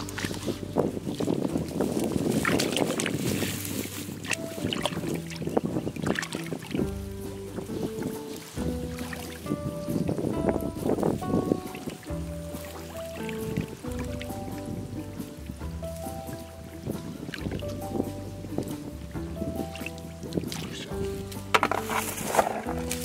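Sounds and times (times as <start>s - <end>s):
hands splashing in muddy water: 0.0s - 10.0s, 18.7s - 23.0s
background music with held notes: 0.0s - 23.0s.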